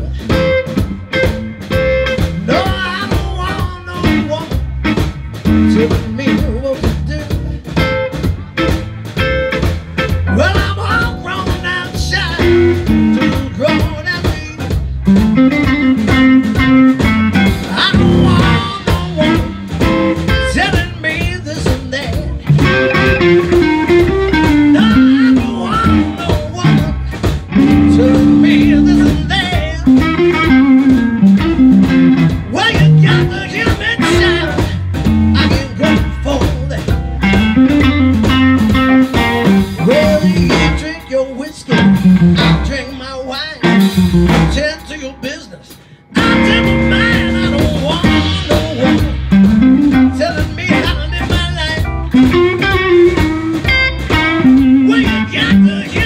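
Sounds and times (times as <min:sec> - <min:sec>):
electric guitar phrases: 0:00.0 - 0:56.0
organ: 0:00.0 - 0:56.0
steady drum beat: 0:00.0 - 0:56.0.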